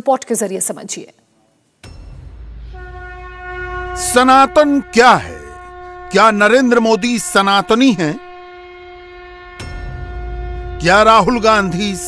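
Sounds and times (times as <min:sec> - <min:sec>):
sustained horn-like tone: 0:02.2 - 0:12.0.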